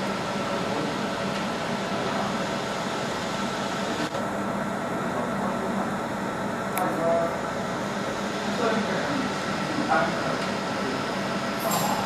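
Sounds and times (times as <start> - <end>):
laser marking machine humming: 0.0 - 12.0.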